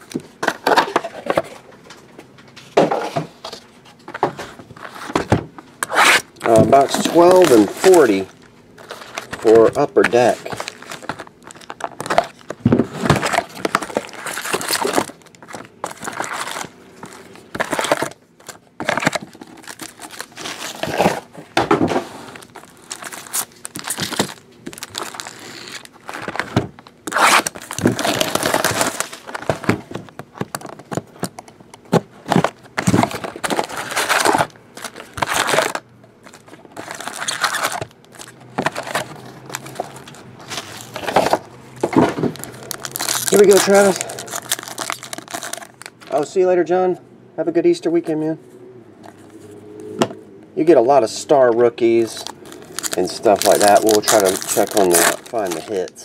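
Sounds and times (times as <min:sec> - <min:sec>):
foil packs crinkling: 0:05.8 - 0:31.5, 0:32.2 - 0:46.3, 0:51.8 - 0:56.0
cardboard box cut and torn: 0:27.1 - 0:29.0.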